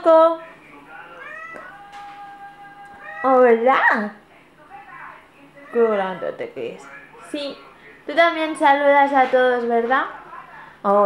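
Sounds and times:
cat meowing: 1.2 - 3.5.

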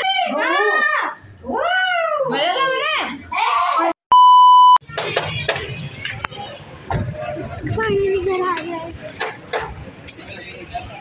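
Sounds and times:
electronic beep: 4.1 - 4.8.

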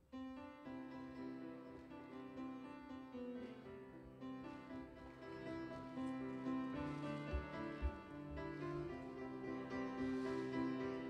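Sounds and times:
quiet piano music: 0.0 - 11.0.

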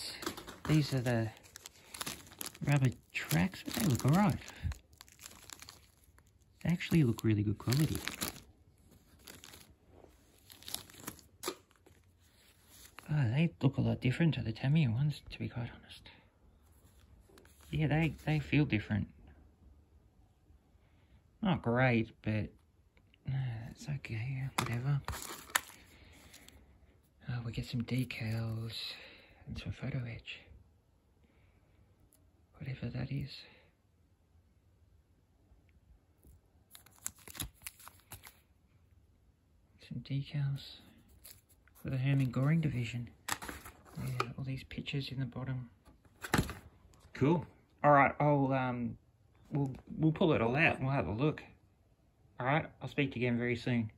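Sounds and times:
plastic bag crinkling: 0.0 - 13.1, 24.6 - 26.6, 36.7 - 38.4, 41.1 - 44.3.

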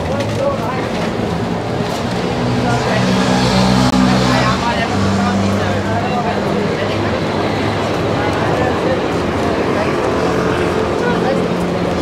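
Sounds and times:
large vehicle engine running: 0.0 - 12.0
pedestrians talking: 0.0 - 12.0.

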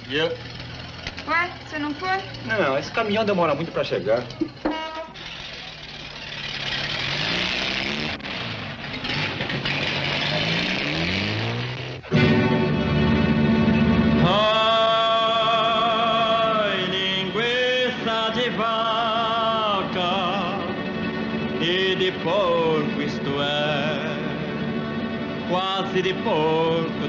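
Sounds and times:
deep drone: 0.0 - 27.0.

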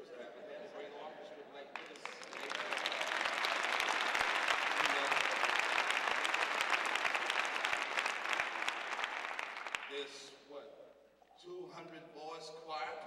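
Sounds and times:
audience applauding: 1.7 - 10.2.

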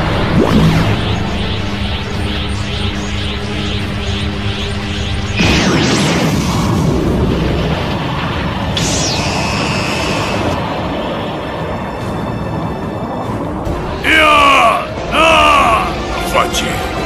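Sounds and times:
dramatic background music: 0.0 - 17.0.

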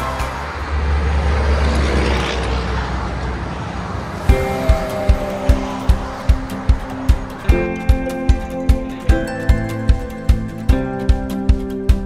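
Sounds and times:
highway traffic rushing: 0.0 - 12.0
music with steady beat: 4.3 - 12.0.

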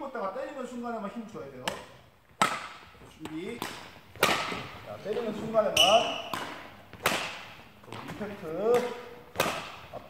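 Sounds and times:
badminton racket striking shuttlecock: 1.6 - 7.6, 8.7 - 9.9.

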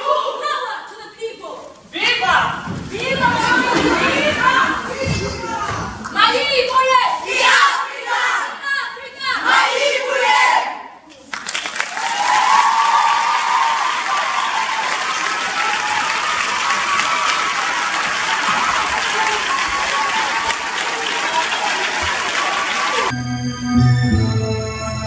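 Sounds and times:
audience applauding and cheering: 11.3 - 23.2
keyboard music: 23.1 - 25.0.

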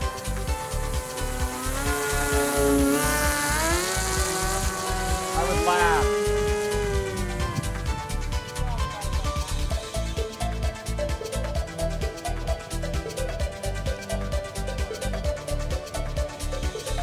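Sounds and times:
background music with steady beat: 0.0 - 17.0
electric motor and propeller whining: 0.0 - 17.0.

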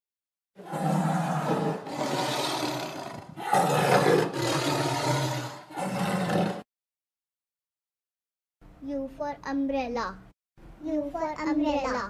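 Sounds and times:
tiger roaring: 0.6 - 6.6.

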